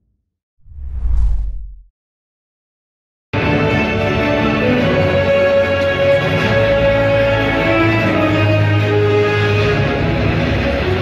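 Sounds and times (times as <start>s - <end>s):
deep rumble: 0.6s - 1.9s
whoosh sound effect: 0.6s - 1.9s.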